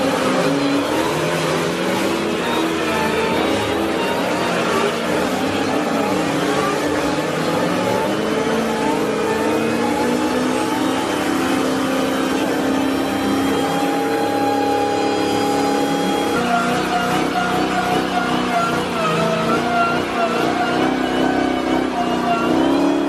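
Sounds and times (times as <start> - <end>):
car engines revving hard: 0.0 - 23.0
tyres spinning: 0.0 - 23.0.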